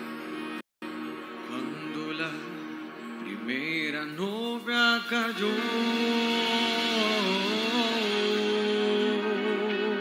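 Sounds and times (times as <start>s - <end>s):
man singing a hymn: 3.3s - 10.0s.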